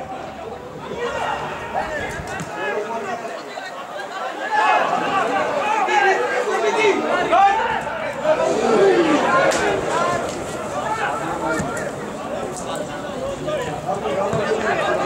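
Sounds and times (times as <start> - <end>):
people chattering and calling out: 0.0 - 15.0.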